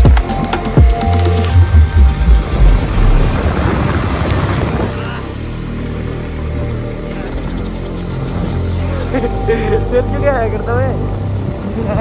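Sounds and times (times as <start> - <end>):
music with a beat: 0.0 - 2.8
wind noise: 1.4 - 5.4.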